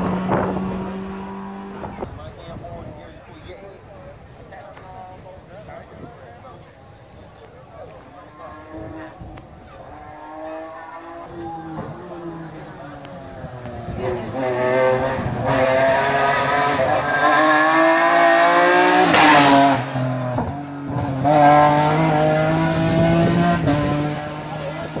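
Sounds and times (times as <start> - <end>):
race car engine at full throttle: 0.0 - 25.0.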